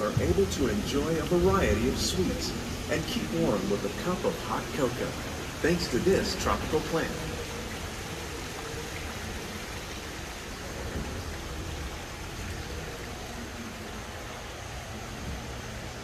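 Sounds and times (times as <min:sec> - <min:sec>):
steady rushing hiss: 0:00.0 - 0:16.0.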